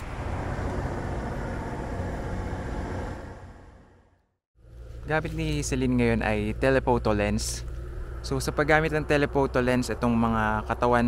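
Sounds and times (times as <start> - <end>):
truck and car passing: 0.0 - 5.0.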